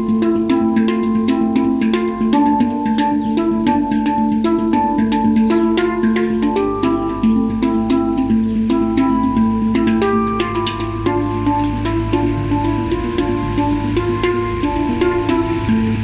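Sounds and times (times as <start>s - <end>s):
handpan notes played by hand: 0.0s - 16.0s.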